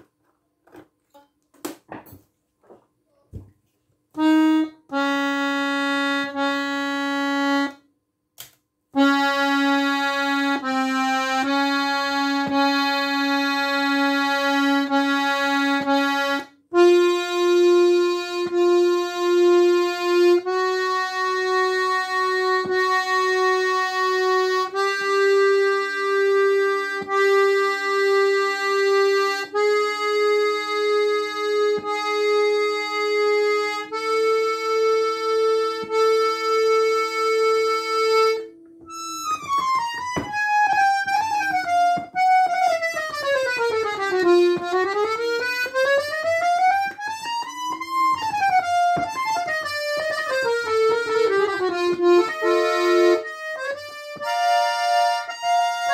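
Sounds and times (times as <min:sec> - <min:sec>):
accordion held notes: 0:04.1 - 0:07.9, 0:09.0 - 0:55.9
fast accordion run of notes: 0:04.2 - 0:07.8, 0:09.0 - 0:55.9.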